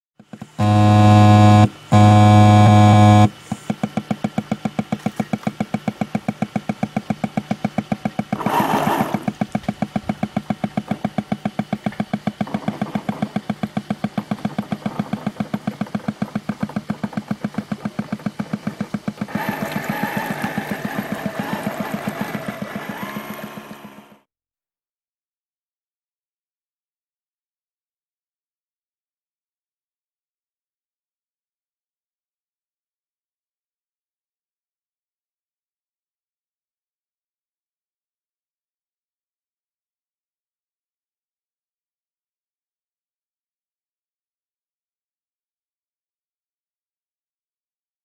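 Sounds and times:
ship's engine running: 0.2 - 24.2
held tones: 0.3 - 24.1
ship's horn blasts: 0.5 - 3.5.

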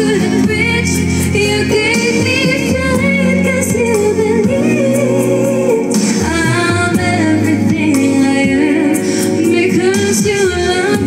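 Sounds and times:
backing music: 0.0 - 11.0
woman singing karaoke: 0.0 - 11.0.

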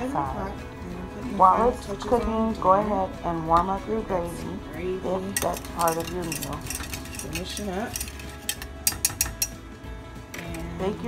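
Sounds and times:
whisk clinking against saucepan: 5.4 - 9.6.

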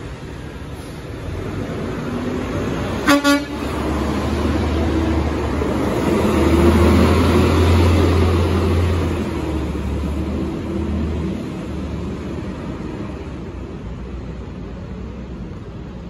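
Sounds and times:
truck engine pulling away: 0.0 - 14.4
garbage truck horn toots: 3.0 - 3.7.

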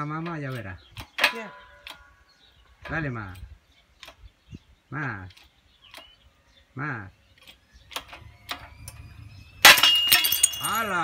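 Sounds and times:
faint ringing: 8.6 - 11.0
ceramic shards clattering: 9.6 - 11.0.

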